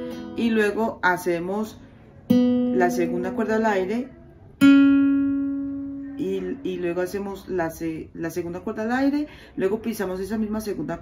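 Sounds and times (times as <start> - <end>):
guitar string plucked: 4.6 - 6.2.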